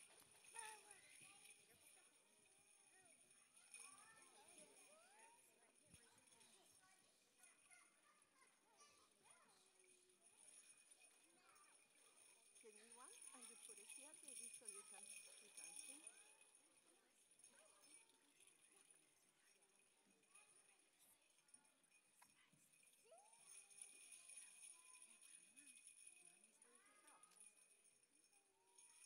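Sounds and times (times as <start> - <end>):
children calling and babbling: 0.0 - 1.8, 2.8 - 10.7, 11.3 - 16.6
jingle bells shaken: 0.0 - 29.0.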